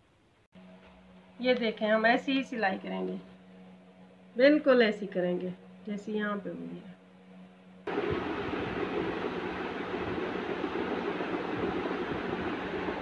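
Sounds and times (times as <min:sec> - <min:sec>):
faint hum: 0:00.0 - 0:13.0
fan rushing noise: 0:00.6 - 0:13.0.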